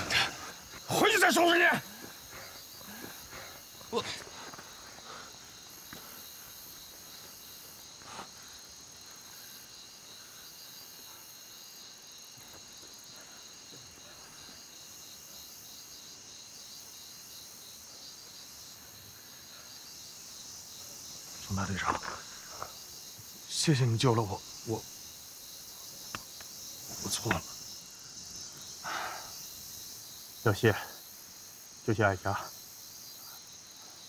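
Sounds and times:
crickets chirping: 0.0s - 34.0s.

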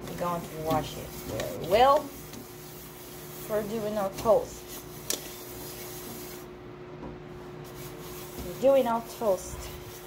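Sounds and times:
sponge scrubbing frying pan: 0.0s - 6.5s, 7.6s - 10.0s
steady low hum: 0.0s - 10.0s.

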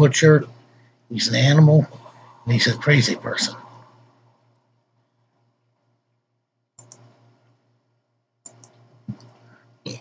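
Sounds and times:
faint low hum: 0.0s - 10.0s
double clicks: 6.8s - 7.1s.

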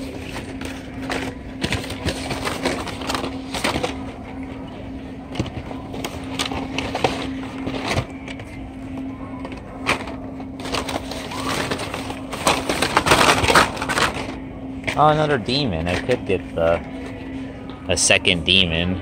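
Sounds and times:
plastic packs rustling and clacking: 0.0s - 4.6s, 5.3s - 17.3s.

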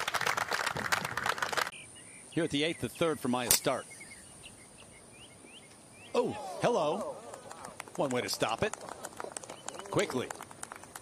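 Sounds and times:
spectators applauding: 0.0s - 1.7s, 6.7s - 11.0s.

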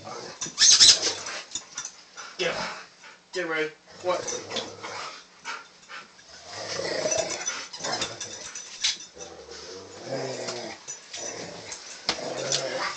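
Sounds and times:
dog growling and whining: 0.0s - 1.5s, 4.0s - 5.3s, 6.2s - 12.9s.

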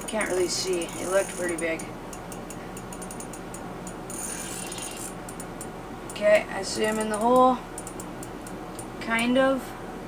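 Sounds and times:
fishing reel clicking: 0.2s - 3.4s, 4.1s - 5.5s.

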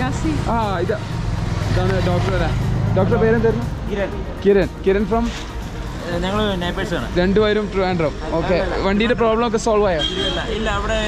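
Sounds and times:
car and scooter engines running: 0.0s - 11.0s.

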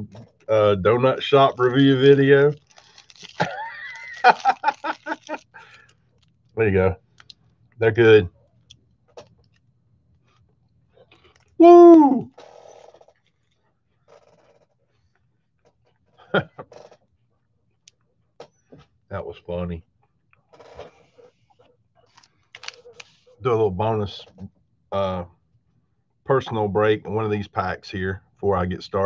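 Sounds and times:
man's drawn-out vocal sound: 11.6s - 12.3s.

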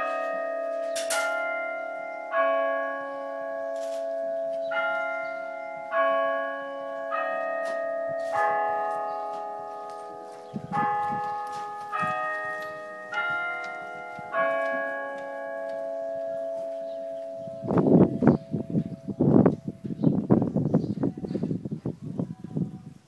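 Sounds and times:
bells ringing notes: 0.0s - 20.3s.

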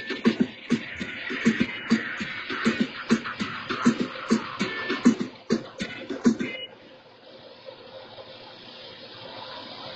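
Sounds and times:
steady hiss: 0.0s - 9.9s.

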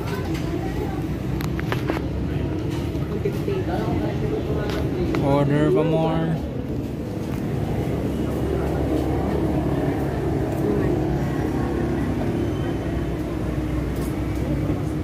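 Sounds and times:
faint indistinct voices: 0.0s - 15.0s.

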